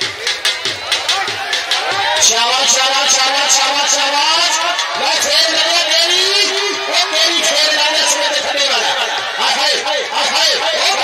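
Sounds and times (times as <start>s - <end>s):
man commentating: 0.9s - 11.0s.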